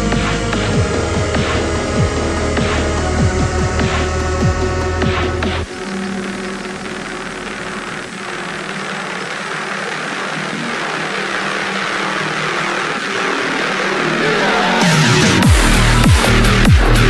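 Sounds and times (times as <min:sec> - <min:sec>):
dark industrial electronic music: 0:00.0 - 0:17.0
heavy bass with pitch sweeps: 0:00.0 - 0:17.0
swelling hiss: 0:00.0 - 0:17.0.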